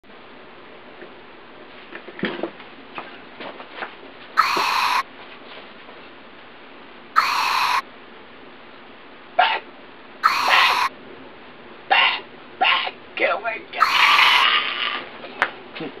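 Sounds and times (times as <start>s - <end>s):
shrill sound effect: 4.4s - 5.0s, 7.2s - 7.8s, 10.2s - 10.9s, 13.8s - 14.5s.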